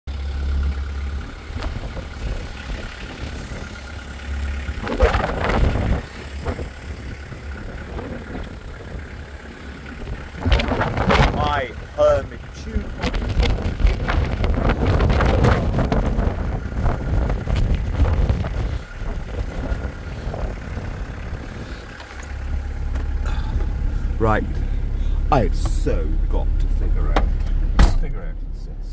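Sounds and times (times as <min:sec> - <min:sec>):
wind buffeting microphone: 0:01.2 - 0:24.9
man talking: 0:11.3 - 0:13.0, 0:23.3 - 0:28.9.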